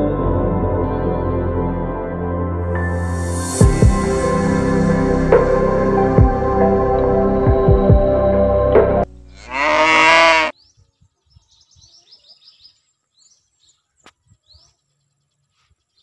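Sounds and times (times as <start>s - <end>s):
background music: 0.0s - 10.4s
cow mooing: 9.3s - 10.5s
faint bird chirps: 10.6s - 16.0s.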